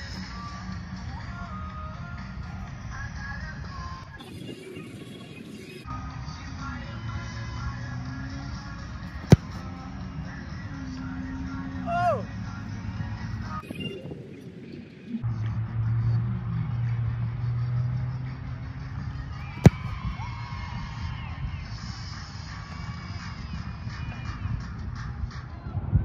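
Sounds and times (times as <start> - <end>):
foot kicking football thump: 9.1 - 9.7, 19.6 - 19.9.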